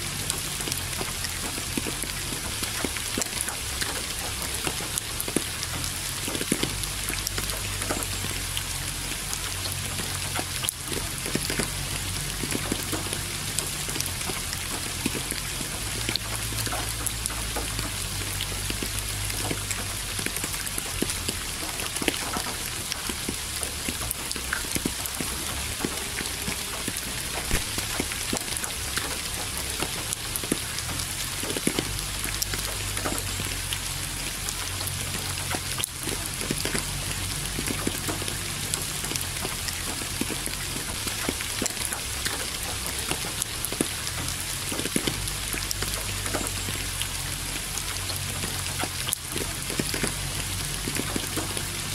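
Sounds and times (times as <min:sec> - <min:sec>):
raindrops ticking on a surface: 0:00.0 - 0:51.9
steady rain: 0:00.0 - 0:51.9.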